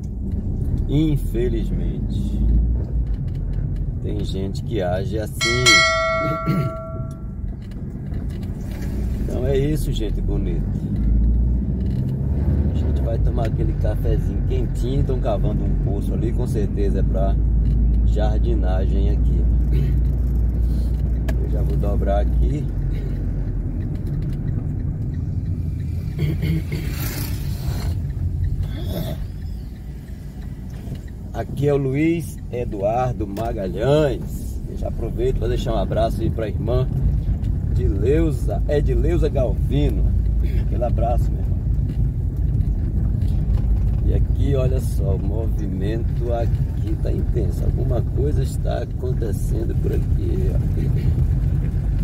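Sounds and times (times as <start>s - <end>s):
car driving rumble: 0.0s - 52.0s
bell-like chime: 5.4s - 7.4s.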